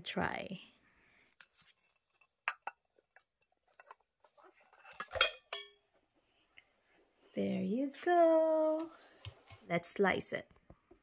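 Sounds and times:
metal mold clinking on ceramic plate: 0:01.9 - 0:04.0, 0:04.6 - 0:05.8.

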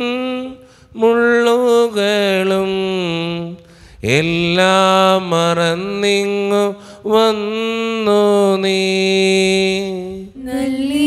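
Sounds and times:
man chanting a hymn: 0:00.0 - 0:10.3.

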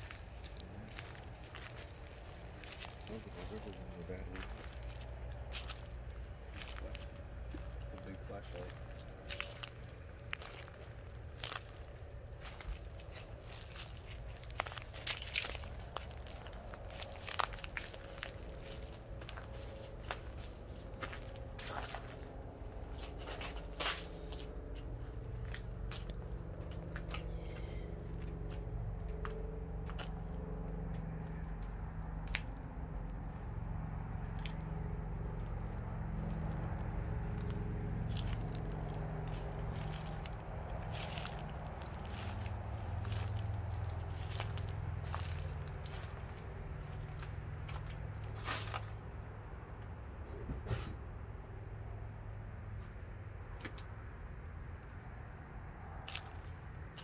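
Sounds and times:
footsteps crunching through leaves: 0:00.0 - 0:24.8, 0:37.2 - 0:49.0
low steady rumble: 0:00.0 - 0:57.0.

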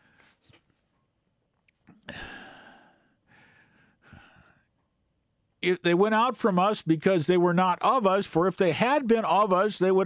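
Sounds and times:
man sighing: 0:01.9 - 0:04.7
soft breath: 0:02.0 - 0:04.8.

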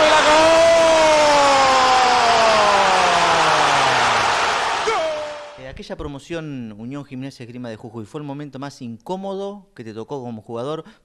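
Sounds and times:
commentator's drawn-out goal cry: 0:00.0 - 0:05.6
stadium crowd cheering: 0:00.0 - 0:05.6.

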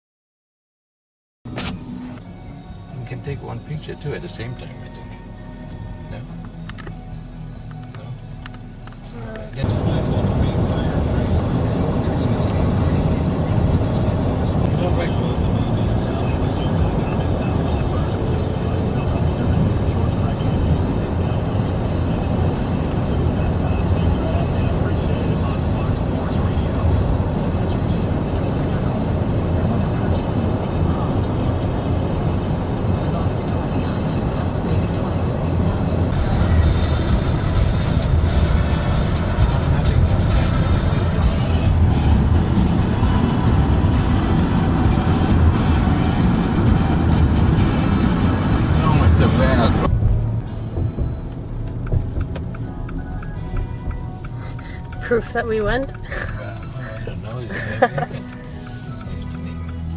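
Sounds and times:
car radio music and voices: 0:01.5 - 0:59.9
car road and engine rumble: 0:01.5 - 0:59.9.

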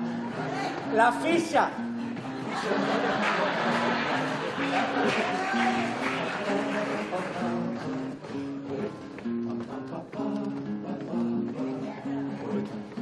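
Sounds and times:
acoustic guitar plucked melody: 0:00.0 - 0:13.0.

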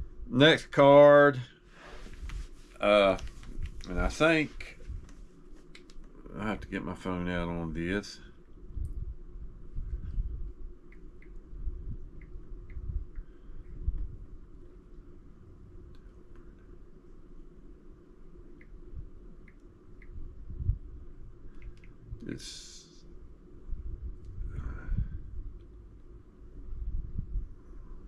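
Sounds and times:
steady low hum: 0:00.0 - 0:28.0
light clicks: 0:05.0 - 0:06.2.

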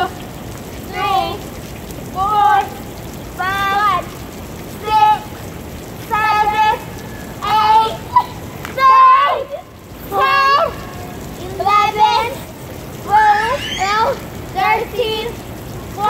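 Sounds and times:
sprinkler water spraying: 0:00.0 - 0:16.0
child counting aloud: 0:03.4 - 0:04.1, 0:04.8 - 0:05.3, 0:07.4 - 0:15.4.

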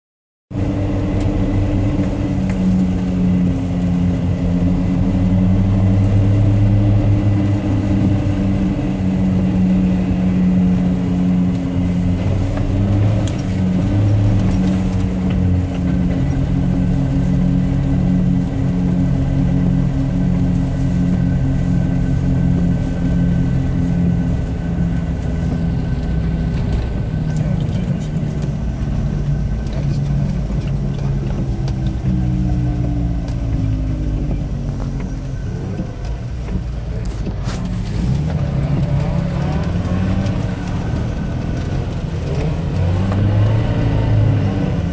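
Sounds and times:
car engine cruising: 0:00.5 - 0:44.9
low road rumble: 0:00.5 - 0:44.9.

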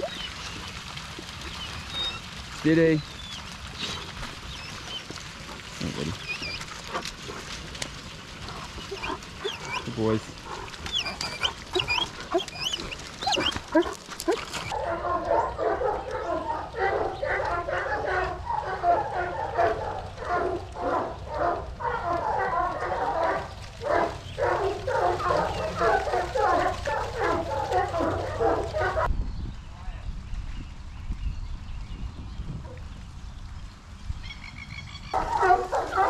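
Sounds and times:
birds chirping: 0:00.0 - 0:00.8, 0:01.4 - 0:05.2, 0:05.8 - 0:07.0, 0:08.4 - 0:29.1, 0:34.2 - 0:36.0.

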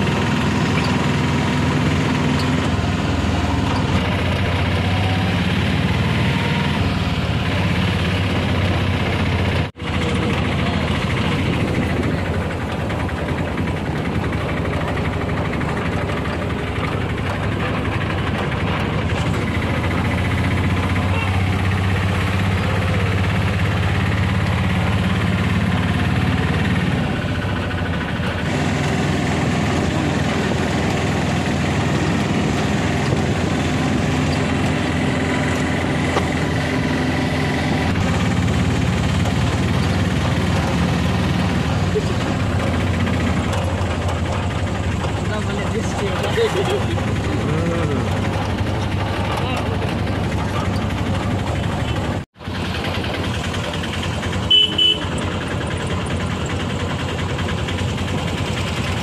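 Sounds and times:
small engine running: 0:00.0 - 0:59.0.

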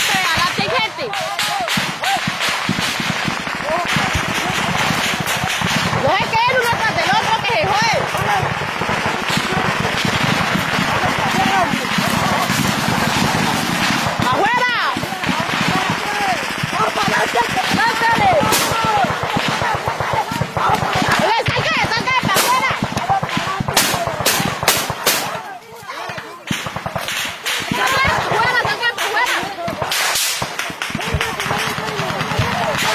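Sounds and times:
men shouting: 0:00.0 - 0:32.9
rifle gunfire bursts: 0:00.0 - 0:32.9
sharp single gunshots: 0:07.7 - 0:21.6, 0:29.0 - 0:32.9.

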